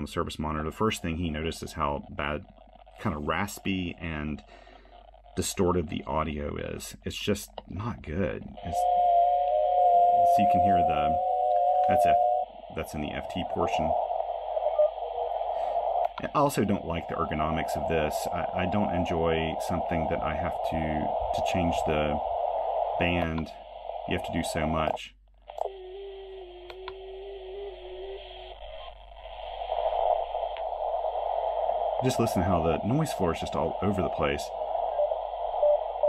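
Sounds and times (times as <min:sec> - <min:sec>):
radio receiver hiss: 0:00.0 - 0:36.0
faint short radio tones: 0:08.2 - 0:22.3, 0:22.9 - 0:30.9, 0:32.0 - 0:36.0
faint clicks: 0:16.0 - 0:16.3, 0:24.8 - 0:25.8, 0:26.6 - 0:27.1, 0:30.5 - 0:30.7.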